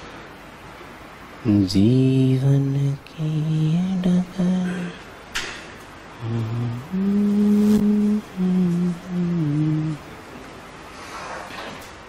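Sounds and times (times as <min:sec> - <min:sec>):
man humming: 0:01.5 - 0:05.1, 0:06.2 - 0:10.2.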